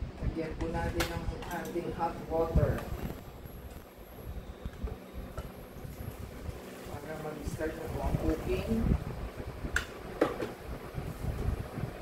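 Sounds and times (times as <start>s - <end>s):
induction cooker humming: 0.0s - 12.0s.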